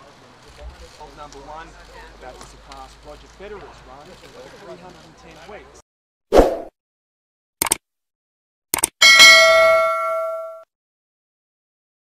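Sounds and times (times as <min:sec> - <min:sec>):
bright bell ding: 0:09.0 - 0:10.7.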